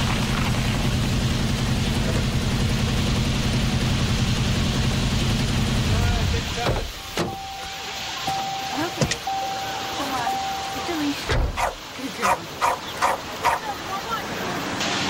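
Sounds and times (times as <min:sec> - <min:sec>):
car engine running: 0:00.0 - 0:14.8
steady high tone: 0:07.0 - 0:11.3.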